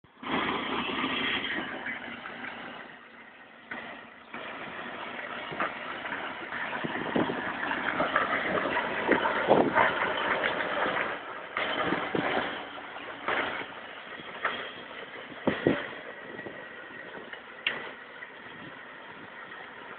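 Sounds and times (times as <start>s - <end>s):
toy car wheels rolling on asphalt: 0.1s - 19.9s
knocks and rattles: 3.7s - 19.9s.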